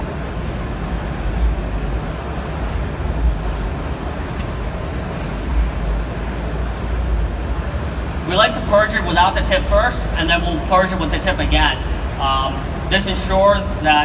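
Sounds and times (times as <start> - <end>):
busy exhibition hall din: 0.0 - 14.0.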